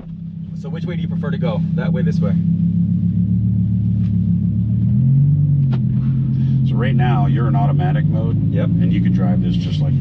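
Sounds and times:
car engine low drone: 0.0s - 10.0s.

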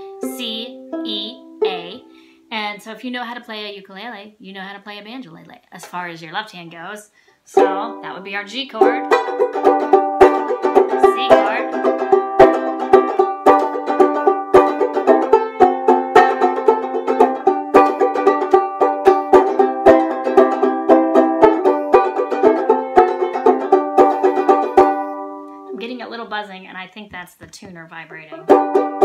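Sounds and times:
banjo ukulele strummed chords: 0.0s - 2.3s, 7.5s - 26.3s, 27.7s - 29.0s.

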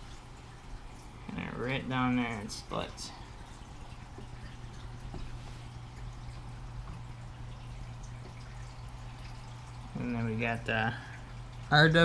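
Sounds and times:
constant low hum: 0.0s - 12.0s
water trickling and splashing: 0.0s - 12.0s.

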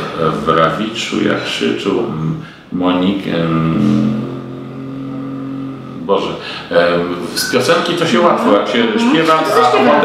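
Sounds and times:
man humming a low note: 3.3s - 6.2s.

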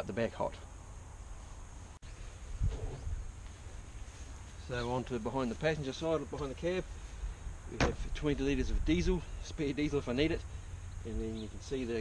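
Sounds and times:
wind rumble on microphone: 2.3s - 3.9s.

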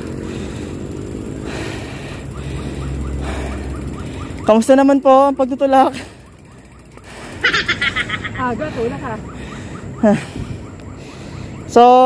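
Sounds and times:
rapid high-pitched laughter: 7.3s - 8.6s.

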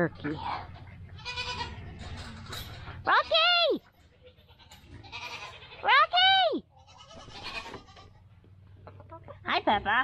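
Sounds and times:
goat bleating: 1.1s - 1.9s, 3.1s - 8.4s.

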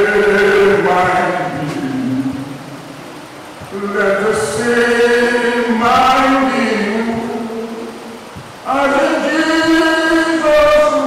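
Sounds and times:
man singing slow chant: 0.0s - 3.0s, 3.7s - 11.0s.

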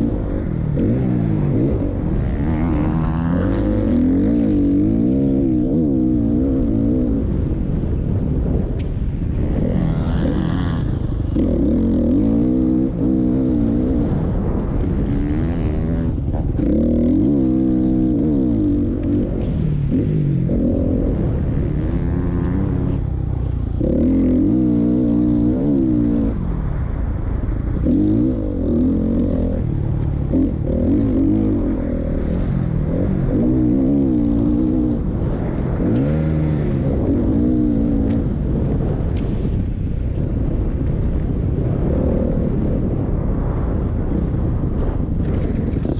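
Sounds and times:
motocross bike engine revving: 0.0s - 8.5s, 9.1s - 39.8s.

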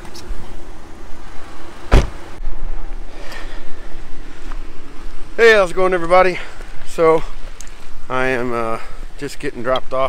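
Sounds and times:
car door slamming: 1.8s - 2.4s.

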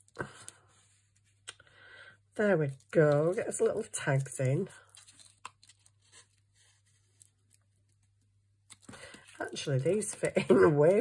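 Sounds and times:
paper tag rustling: 2.7s - 8.0s.

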